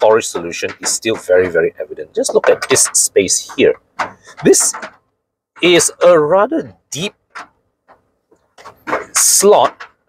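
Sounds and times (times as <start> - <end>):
hand tapping plastic slot: 0.0 - 5.0.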